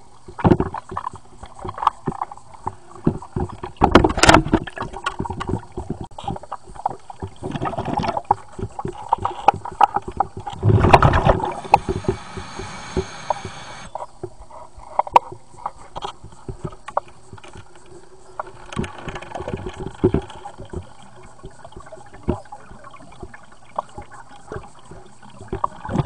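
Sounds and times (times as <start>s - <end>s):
gurgling water: 0.0s - 26.0s
underwater clicks and knocks: 0.3s - 26.0s.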